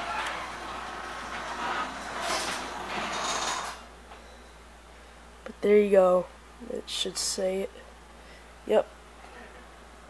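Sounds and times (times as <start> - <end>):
garage door opener motor: 0.0 - 3.9.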